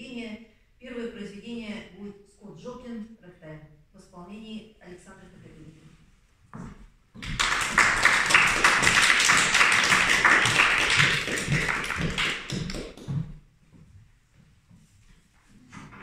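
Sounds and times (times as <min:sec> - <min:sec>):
audience applauding: 0:07.2 - 0:13.1.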